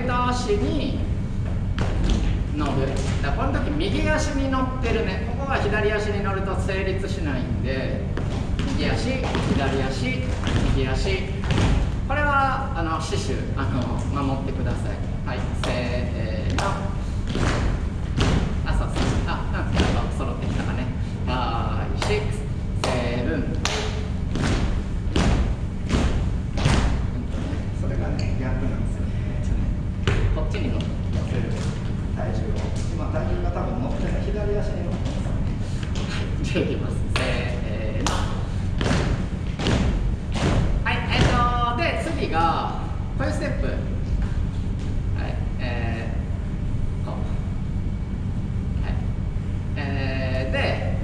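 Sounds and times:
rhythmic thumps: 0.0 - 51.0
person speaking: 2.3 - 24.3, 27.0 - 38.9, 40.8 - 44.2.

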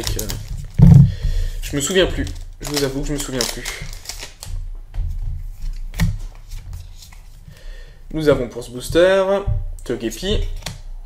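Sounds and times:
trading cards being handled: 0.0 - 7.5, 10.4 - 10.9.

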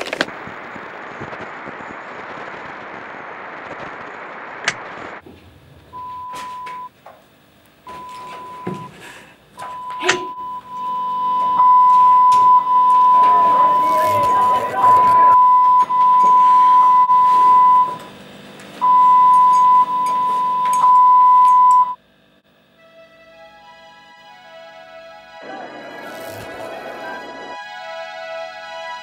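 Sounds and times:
television static hissing: 0.0 - 20.8, 22.0 - 29.0
single-pitched test tone: 6.0 - 6.9, 7.9 - 8.9, 9.6 - 18.1, 18.8 - 22.0
clicks: 9.6 - 16.5, 17.8 - 22.0.

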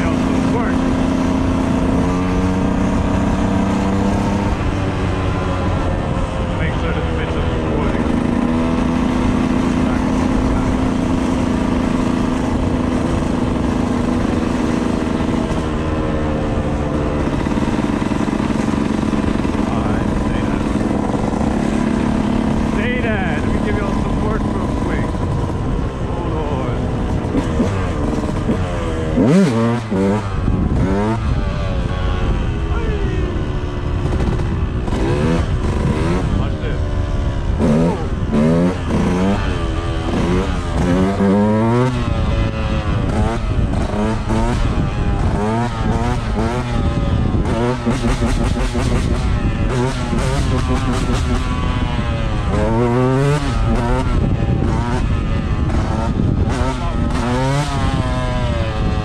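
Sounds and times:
dirt bike engine: 0.0 - 59.0
dirt bike engine revving: 0.0 - 59.0.

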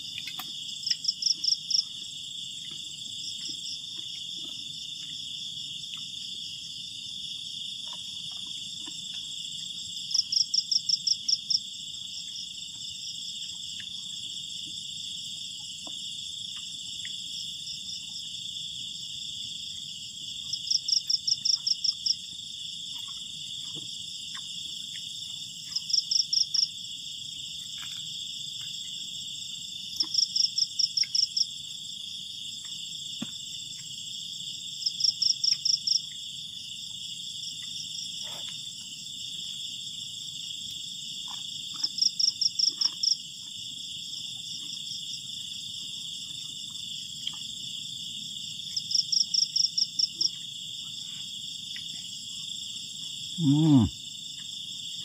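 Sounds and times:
high-pitched insect trill: 0.0 - 55.0
insect chirping call: 0.0 - 55.0.

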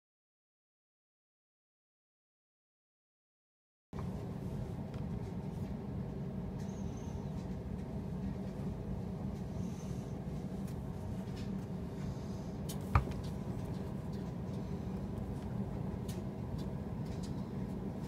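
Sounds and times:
steady low hum: 4.0 - 18.0.

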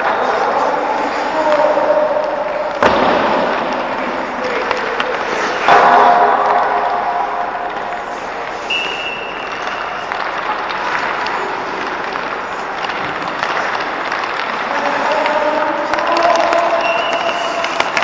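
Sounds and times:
skates scraping ice: 0.0 - 18.0
sticks and pucks clacking: 0.0 - 18.0.

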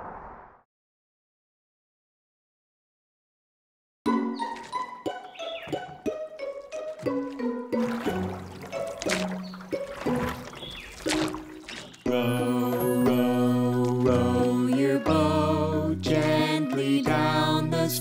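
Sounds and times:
light plinking music: 4.1 - 18.0
water splashing effects: 4.4 - 17.6.

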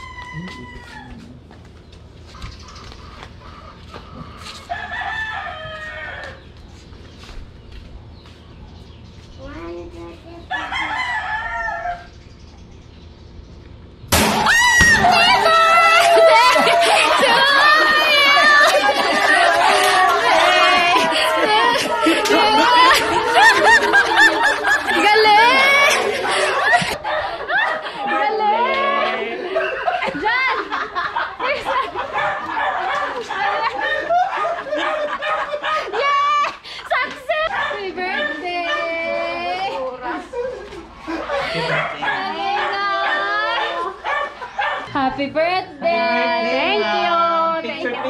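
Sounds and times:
rooster crowing: 0.0 - 1.4, 4.4 - 6.6, 10.5 - 12.2, 14.2 - 30.0
people talking: 9.4 - 11.2, 14.8 - 32.0, 35.9 - 44.0, 44.9 - 48.0
people laughing: 15.0 - 44.8, 46.0 - 48.0.

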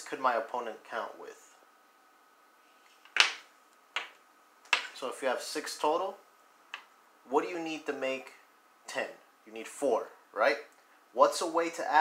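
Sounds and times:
domino tiles clacking on table: 3.0 - 5.0.

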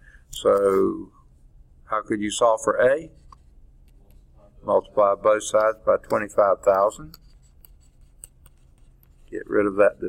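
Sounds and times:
stylus ticking and scratching on screen: 2.8 - 10.0.

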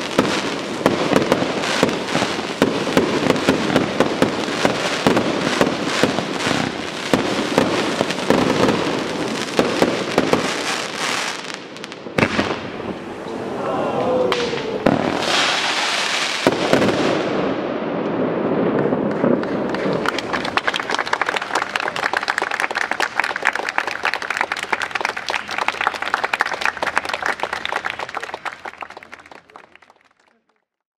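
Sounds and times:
firework bangs: 0.0 - 13.2, 14.2 - 28.8
firework crackling: 0.0 - 13.6, 14.2 - 30.0
firework burst rushing: 14.3 - 17.6.

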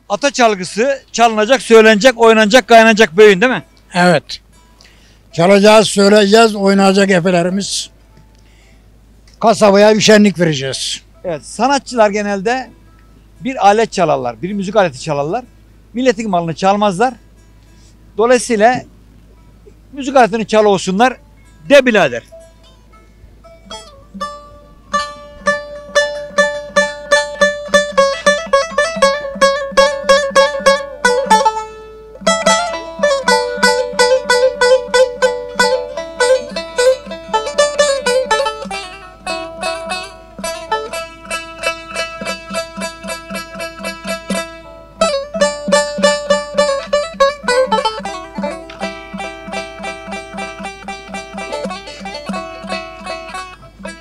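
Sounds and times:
plucked lutes playing fast: 21.6 - 54.0.

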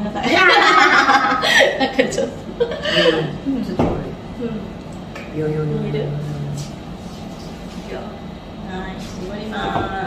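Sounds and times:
women chatting and chuckling: 0.0 - 3.6.

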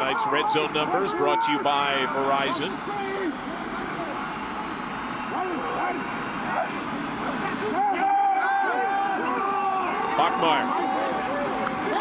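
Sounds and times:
men shouting: 0.0 - 12.0
steady hiss of field noise: 0.0 - 12.0.

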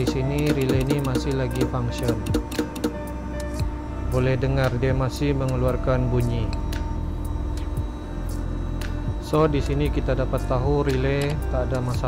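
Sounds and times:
horn relay clicking: 0.0 - 3.7, 11.0 - 12.0
background music: 0.0 - 12.0.

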